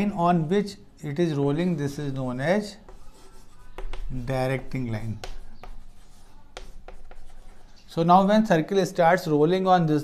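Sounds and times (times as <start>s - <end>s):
chalk scratching on chalkboard: 2.6s - 8.0s.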